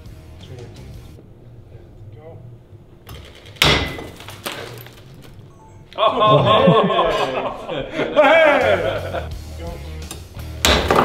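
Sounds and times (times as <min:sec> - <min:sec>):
background music with bass: 0:00.0 - 0:02.7, 0:08.1 - 0:11.0.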